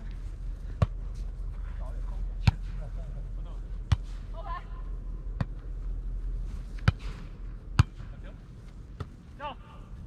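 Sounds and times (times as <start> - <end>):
volleyball being hit: 6.8 - 8.1.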